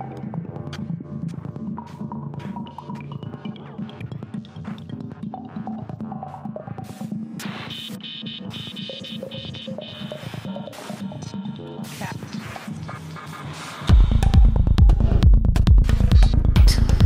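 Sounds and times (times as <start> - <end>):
kick drum and deep bassline: 0.0 - 17.0
electronic dance music: 1.8 - 14.9.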